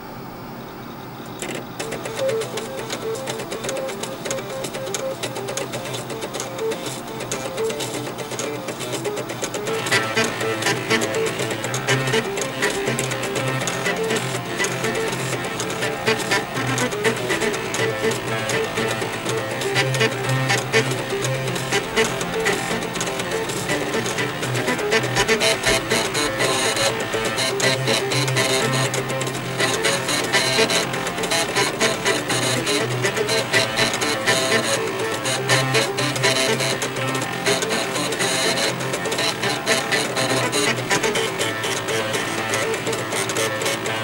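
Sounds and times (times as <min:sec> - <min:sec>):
floppy drive motors buzzing a tune: 0:01.2 - 0:44.0.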